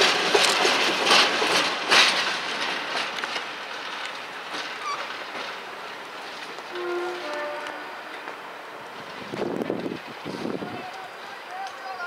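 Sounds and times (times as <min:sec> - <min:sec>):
diesel locomotive running slowly: 0:00.0 - 0:12.0
train horn: 0:06.7 - 0:08.4.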